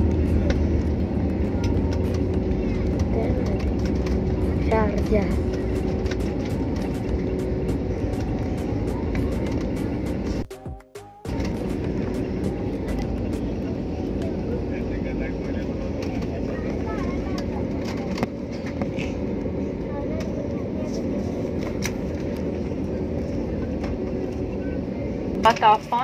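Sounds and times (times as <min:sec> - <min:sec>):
faint passenger voices: 0:00.0 - 0:10.6, 0:11.3 - 0:26.0
aircraft engines and wheels rumbling: 0:00.0 - 0:26.0.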